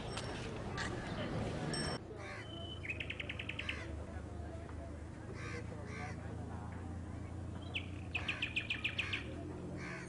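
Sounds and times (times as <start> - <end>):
crows cawing: 5.4 - 6.2, 9.8 - 10.0.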